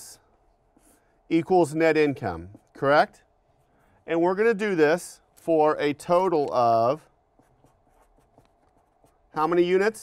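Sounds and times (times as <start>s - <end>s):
marker scratching on paper: 0.4s - 4.3s, 5.4s - 10.0s.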